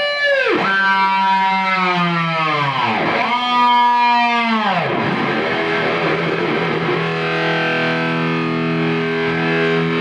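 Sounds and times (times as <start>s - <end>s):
electric guitar note bending down: 0.2s - 10.0s.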